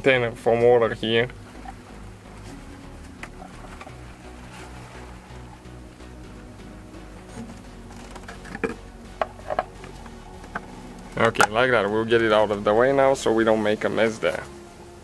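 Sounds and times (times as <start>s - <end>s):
faint steady background tones: 0.0s - 15.0s.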